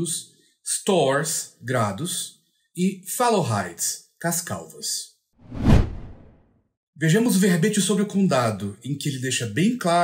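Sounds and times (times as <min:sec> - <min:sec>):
whoosh: 0:05.4 - 0:06.4.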